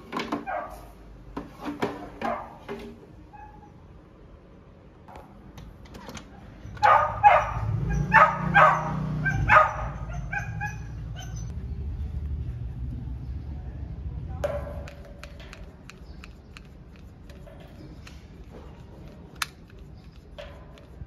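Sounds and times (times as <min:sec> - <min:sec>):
dog barking: 0:00.4 - 0:00.9, 0:06.8 - 0:11.5.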